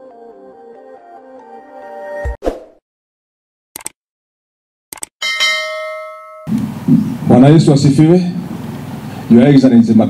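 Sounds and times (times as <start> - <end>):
notification bell ding: 5.2 - 6.5
background noise: 5.2 - 10.0.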